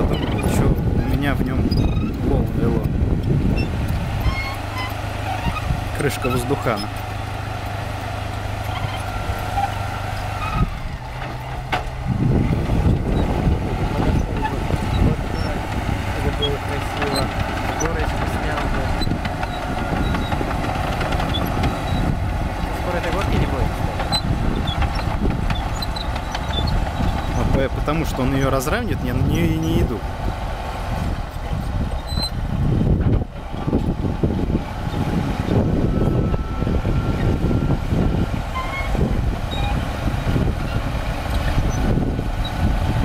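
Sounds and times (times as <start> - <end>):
bulldozer diesel engine running: 0.0 - 43.0.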